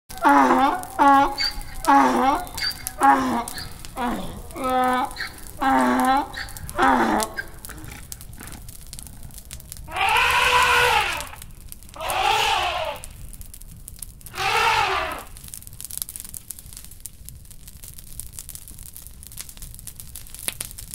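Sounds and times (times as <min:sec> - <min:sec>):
drawn-out vocal calls: 0:00.1 - 0:11.4, 0:12.0 - 0:13.1, 0:14.3 - 0:15.4
voice: 0:00.2 - 0:07.9.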